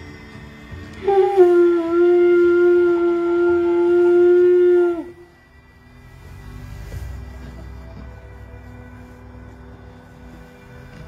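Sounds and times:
horn long steady note: 0:00.0 - 0:11.0.

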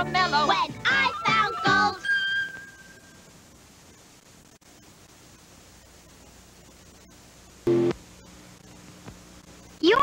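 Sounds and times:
faint tape hiss: 0:00.0 - 0:10.0.

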